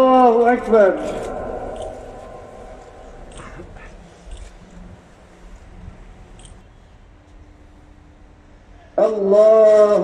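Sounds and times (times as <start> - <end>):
loudspeaker call echoing: 0.0 - 4.6, 9.0 - 10.0
crowd background noise: 0.0 - 9.0.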